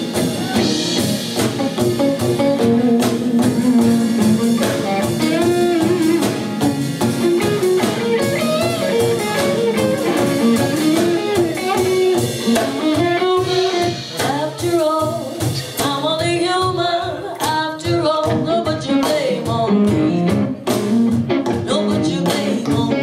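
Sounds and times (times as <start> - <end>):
drum kit: 0.0 - 23.0
electric guitar: 0.0 - 23.0
woman singing lead: 11.7 - 20.6, 21.4 - 23.0.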